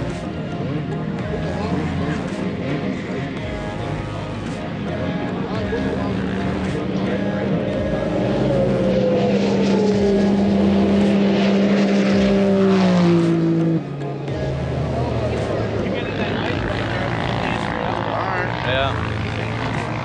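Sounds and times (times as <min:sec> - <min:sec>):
mixed engine noise: 0:00.0 - 0:20.0
snowmobile engine passing: 0:00.0 - 0:20.0.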